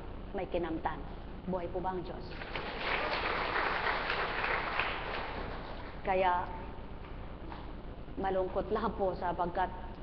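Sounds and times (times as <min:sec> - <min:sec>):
audience applauding: 0:02.4 - 0:05.8.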